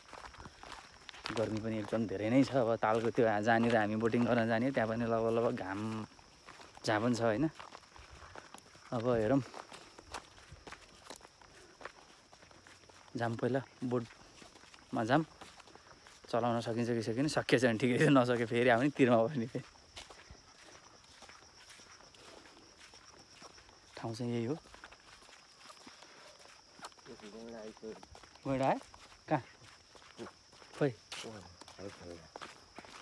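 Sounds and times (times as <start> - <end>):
footsteps on dirt track: 0.0 - 33.0.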